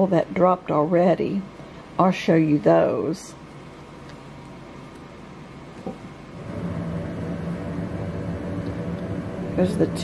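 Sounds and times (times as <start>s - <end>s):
low mechanical hum: 0.0s - 10.0s.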